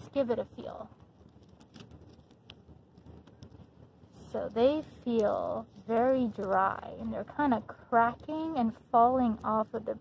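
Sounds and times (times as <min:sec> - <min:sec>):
dry leaves crackling: 0:00.0 - 0:10.0
small sharp ticks: 0:00.9 - 0:03.8.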